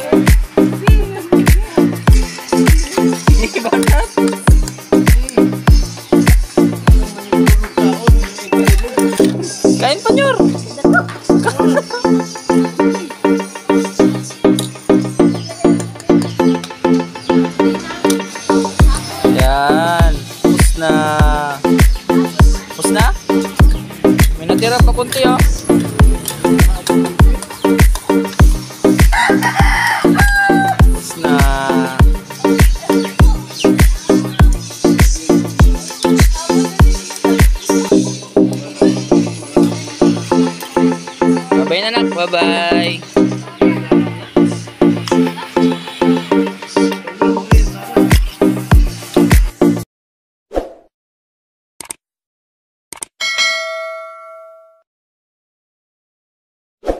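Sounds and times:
background music with steady beat: 0:00.0 - 0:49.8
rooster crowing: 0:29.1 - 0:30.9
notification bell ding: 0:53.2 - 0:54.8.

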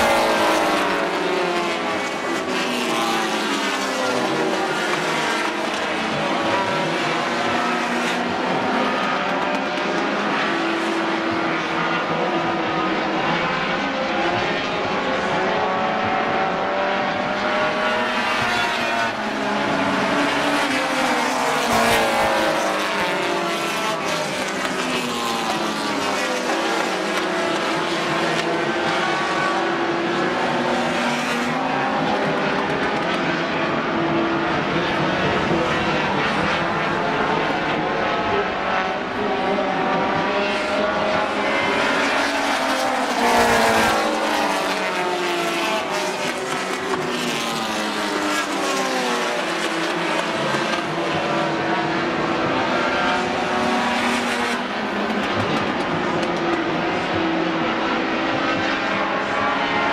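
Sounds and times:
race car engines at high revs: 0:00.0 - 0:59.9.

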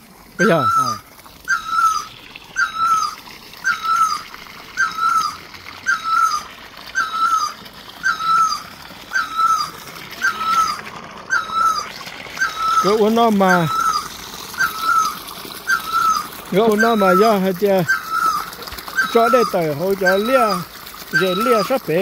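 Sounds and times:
animal calling with short high notes: 0:00.4 - 0:21.8.

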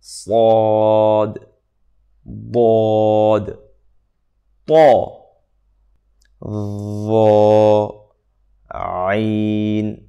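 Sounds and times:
man pronouncing a letter: 0:00.0 - 0:01.6, 0:02.2 - 0:03.7, 0:04.6 - 0:05.3, 0:06.4 - 0:08.1, 0:08.7 - 0:10.0.

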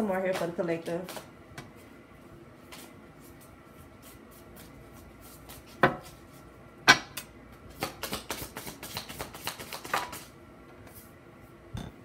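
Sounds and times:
cards clicking while shuffled: 0:07.8 - 0:10.3.

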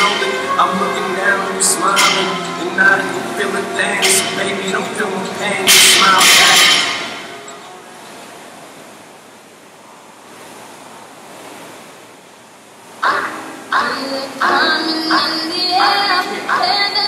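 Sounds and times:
music with singing: 0:00.0 - 0:07.8, 0:13.0 - 0:17.0
rowing machine fans whooshing: 0:00.0 - 0:17.0.

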